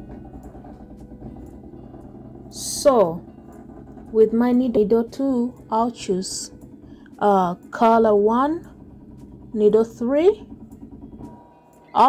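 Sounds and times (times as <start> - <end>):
embroidery machine humming: 0.0 - 12.0
faint steady tones: 0.0 - 12.0.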